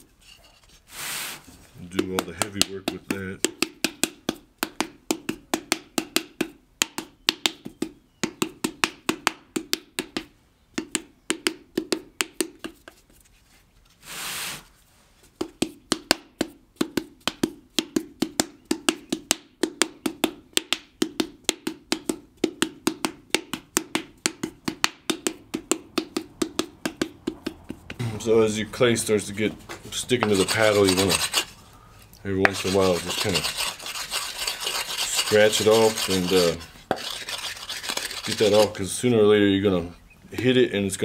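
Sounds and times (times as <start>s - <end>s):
wooden paddle slapping clay pot: 1.7s - 13.2s, 15.2s - 28.3s, 29.4s - 31.6s, 32.4s - 38.8s.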